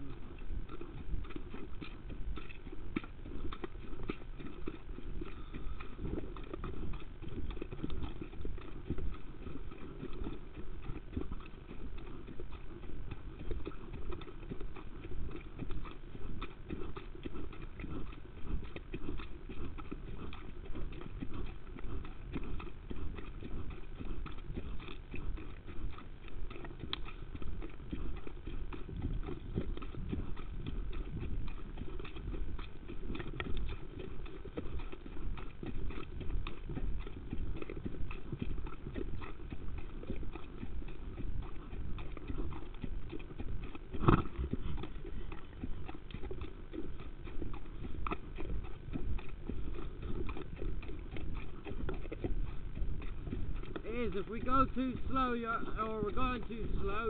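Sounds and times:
horse hoofbeats: 0.0 - 57.0.

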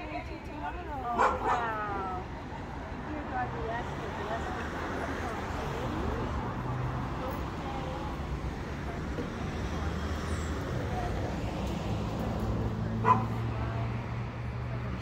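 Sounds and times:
dog barking: 1.2 - 1.8, 13.0 - 13.4.

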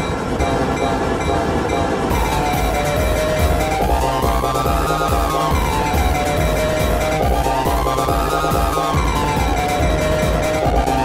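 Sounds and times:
diesel locomotives passing: 0.0 - 7.9
sustained locomotive tones: 0.0 - 11.0.

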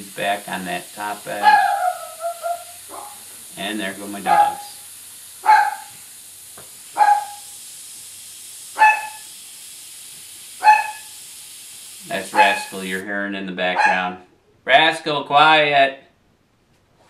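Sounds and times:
dog barking: 1.4 - 3.2, 4.3 - 4.6, 5.4 - 5.9, 7.0 - 7.5, 8.8 - 9.3, 10.6 - 11.1, 12.3 - 12.7, 13.8 - 14.2.

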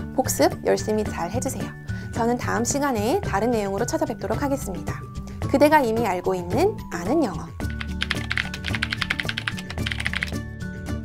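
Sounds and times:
background music: 0.0 - 11.0
keyboard typing clicks: 7.7 - 10.4.

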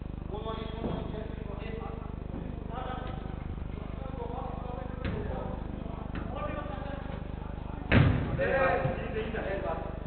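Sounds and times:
football kicked hard: 5.0 - 5.5, 7.9 - 9.0.

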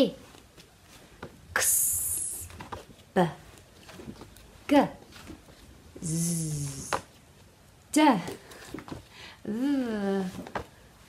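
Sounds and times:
woman hissing sss sound: 6.0 - 7.0.

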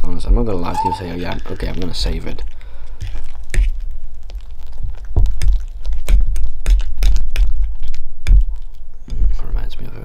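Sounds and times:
fork scraping a dish: 0.7 - 1.2.

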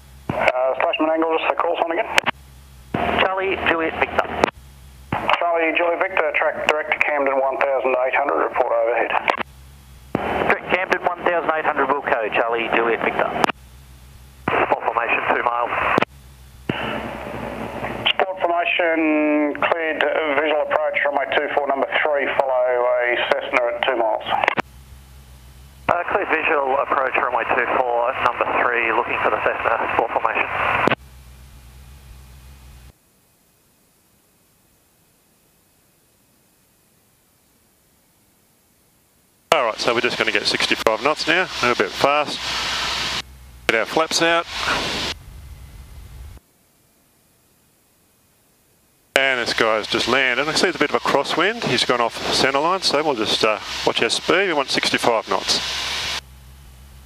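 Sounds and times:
faint low engine hum: 0.0 - 21.7, 22.4 - 33.0, 39.5 - 46.4, 49.1 - 57.0
radio hiss: 0.0 - 32.9, 39.5 - 46.4, 49.1 - 57.0
tinny radio voices: 0.3 - 2.3, 3.0 - 4.5, 5.2 - 9.4, 10.2 - 13.5, 14.4 - 16.1, 16.7 - 24.6, 25.9 - 31.0, 39.5 - 45.2, 49.2 - 56.0.

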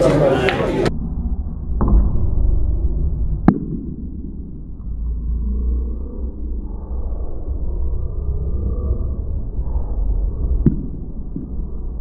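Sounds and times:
muffled rumble of a busy bar: 0.0 - 1.0.

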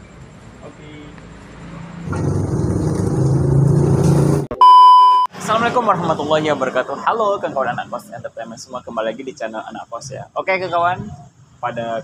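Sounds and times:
vehicle engine running: 2.1 - 4.5.

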